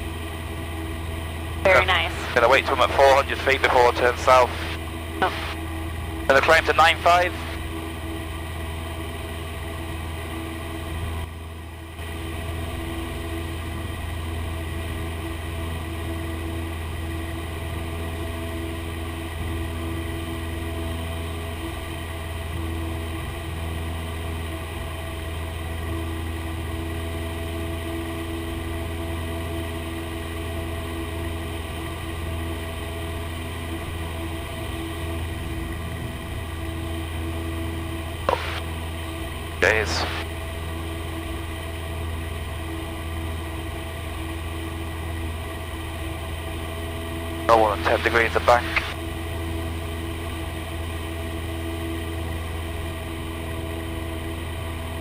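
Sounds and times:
propeller plane engine droning: 0:00.0 - 0:55.0.

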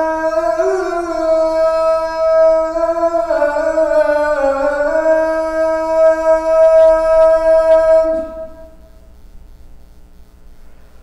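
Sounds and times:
man chanting call to prayer: 0:00.0 - 0:08.9.

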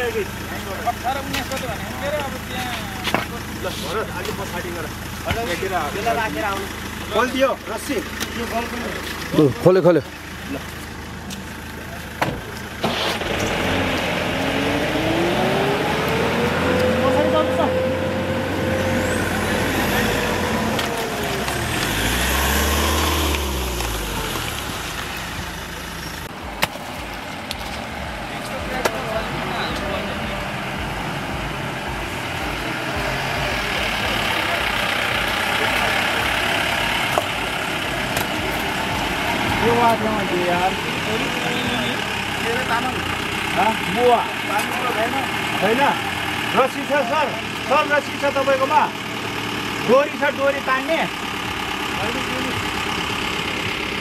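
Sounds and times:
engine revving hard: 0:12.8 - 0:25.1, 0:28.0 - 0:54.0.

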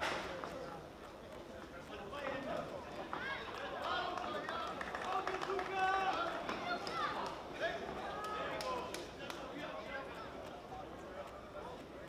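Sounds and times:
audience background noise: 0:00.0 - 0:12.0.

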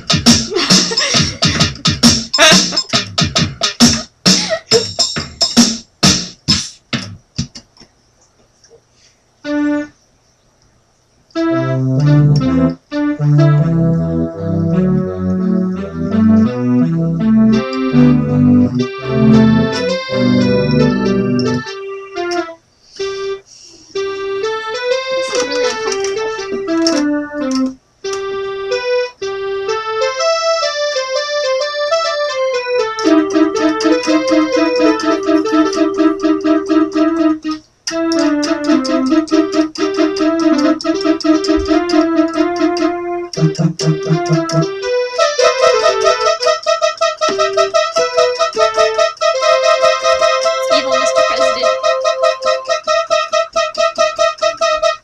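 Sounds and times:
electronic keyboard piano melody: 0:00.0 - 0:04.1, 0:09.4 - 0:10.0, 0:11.3 - 0:55.0.

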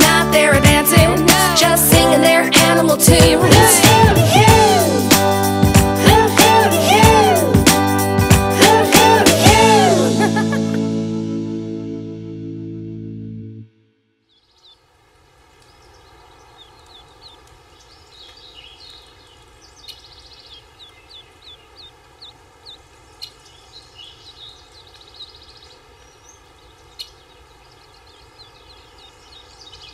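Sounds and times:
outdoor background hiss: 0:14.2 - 0:29.9
songbirds chirping and trilling: 0:14.2 - 0:29.9.

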